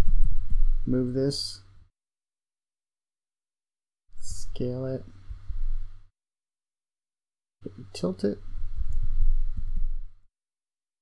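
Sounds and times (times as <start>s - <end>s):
low rumble on microphone: 0.0s - 1.1s, 5.2s - 6.0s, 8.4s - 10.2s.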